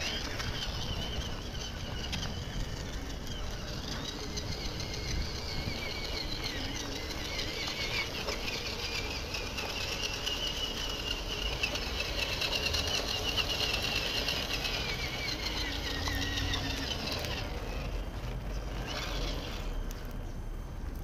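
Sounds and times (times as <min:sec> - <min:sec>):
electric motor whining: 0:00.0 - 0:20.3.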